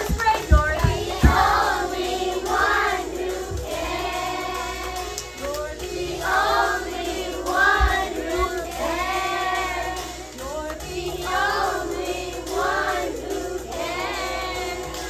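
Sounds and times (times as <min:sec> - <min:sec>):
children singing: 0:00.0 - 0:15.0
musical accompaniment: 0:00.0 - 0:15.0.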